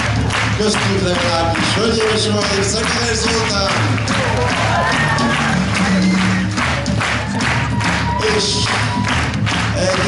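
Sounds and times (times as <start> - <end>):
bass guitar: 0.0 - 10.0
drum kit: 0.0 - 10.0
hand claps: 0.0 - 10.0.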